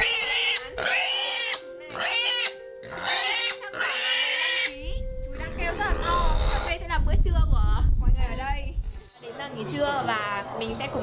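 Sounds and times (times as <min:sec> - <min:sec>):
pig squealing: 0:00.0 - 0:04.8, 0:05.7 - 0:06.8.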